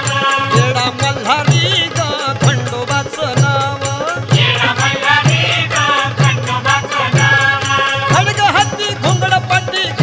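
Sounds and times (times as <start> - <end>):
jingling percussion: 0.0 - 10.0
person singing: 0.0 - 10.0
steady drum beat: 0.0 - 10.0.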